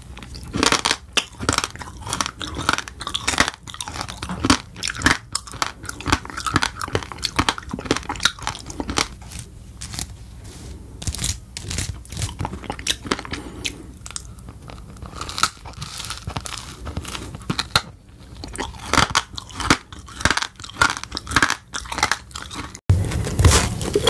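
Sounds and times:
crunchy biting and chewing: 0.0 - 10.2, 10.8 - 24.0.

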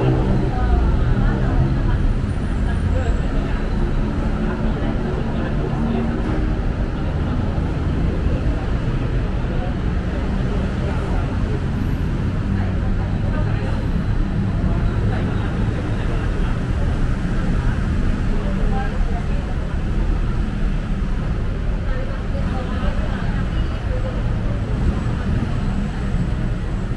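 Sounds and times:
city road traffic rumble: 0.0 - 26.9
indistinct voices: 0.0 - 26.9.

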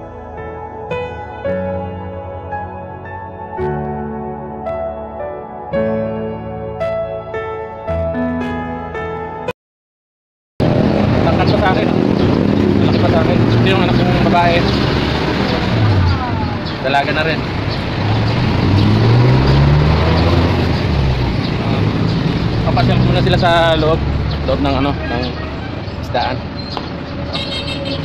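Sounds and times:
roadside traffic noise: 10.6 - 28.0
vehicle engine rising in pitch: 10.6 - 28.0
people talking: 11.2 - 12.0, 12.7 - 17.4, 22.6 - 26.4.

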